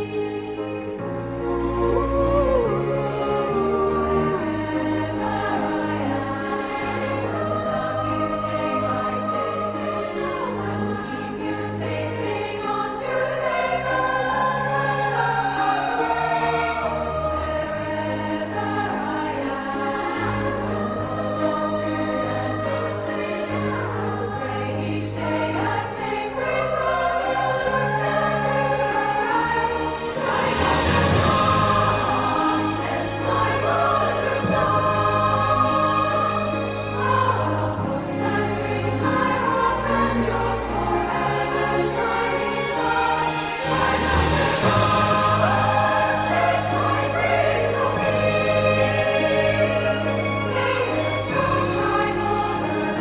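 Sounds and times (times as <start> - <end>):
choir singing: 0.0 - 53.0.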